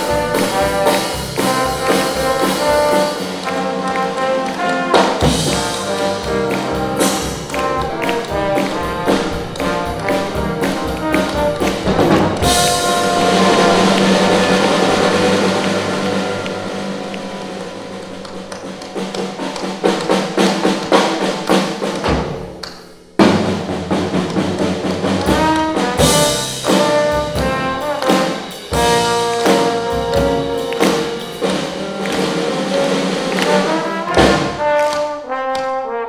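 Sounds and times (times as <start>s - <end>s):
jazz combo playing: 0.0s - 22.4s, 23.2s - 36.0s
drum strokes: 0.0s - 36.0s
cymbal crash: 12.4s - 18.5s.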